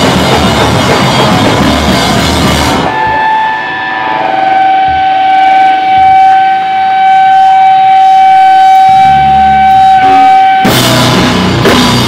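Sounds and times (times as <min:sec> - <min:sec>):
electric guitar feedback tone: 0:00.0 - 0:12.0.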